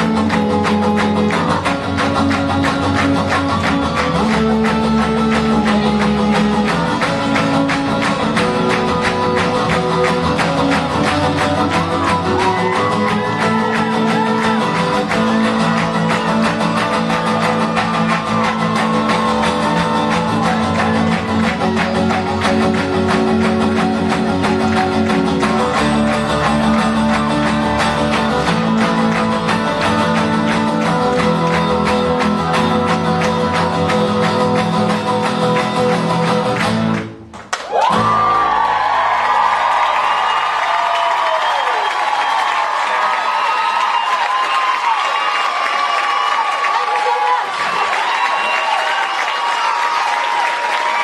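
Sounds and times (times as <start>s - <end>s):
acoustic guitars strummed: 0.0s - 38.8s.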